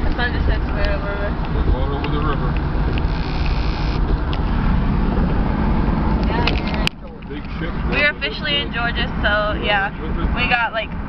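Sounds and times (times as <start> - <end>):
car road noise: 0.0 - 11.0.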